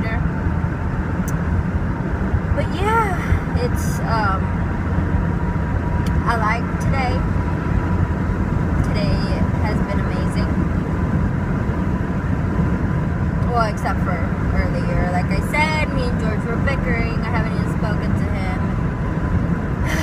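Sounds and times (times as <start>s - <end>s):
road and wind noise in car: 0.0s - 20.0s.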